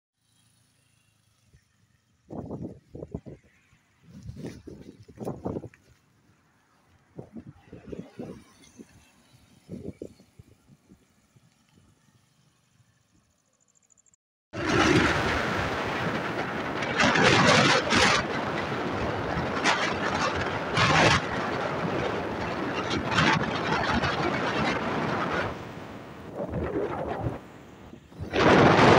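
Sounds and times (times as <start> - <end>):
road and tyre noise: 0.2 - 28.9.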